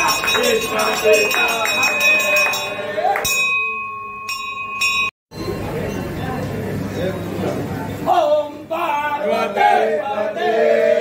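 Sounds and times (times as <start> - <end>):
temple bell ringing: 0.0 - 7.4.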